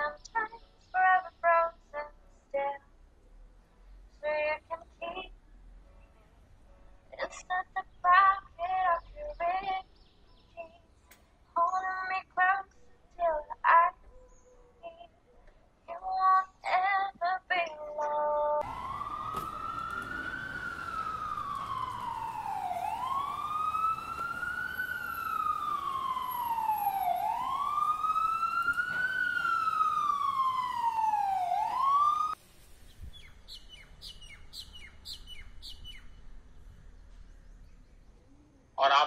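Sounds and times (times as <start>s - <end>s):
faint bird chirps: 13.9s - 15.5s, 32.8s - 38.8s
siren wailing: 18.6s - 32.4s.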